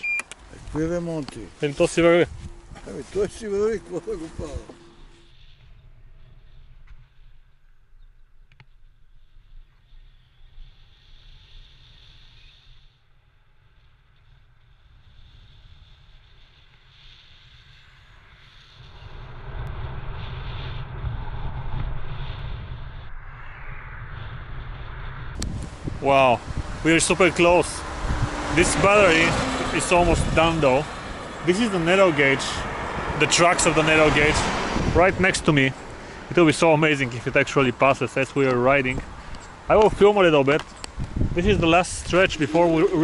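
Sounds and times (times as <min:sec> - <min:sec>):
wind and road noise rumble: 0:00.0 - 0:43.0.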